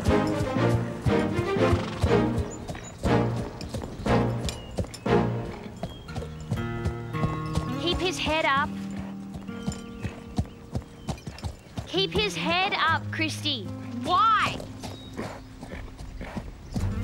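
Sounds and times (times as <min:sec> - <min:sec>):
background music sustained notes: 0:00.0 - 0:17.0
horse hooves clip-clopping on dirt: 0:00.0 - 0:17.0
horse whinnying: 0:01.6 - 0:02.4.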